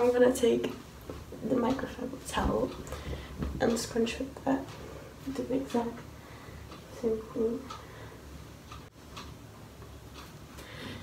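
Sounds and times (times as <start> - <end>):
clock ticking faintly: 0.0 - 11.0.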